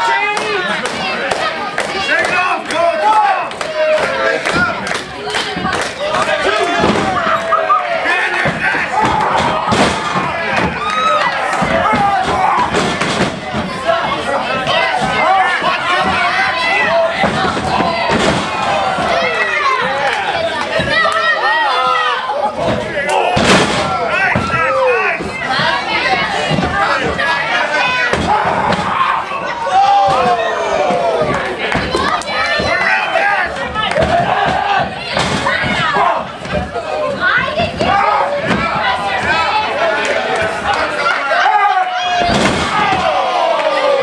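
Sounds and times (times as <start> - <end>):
crowd yelling and shouting: 0.0 - 44.0.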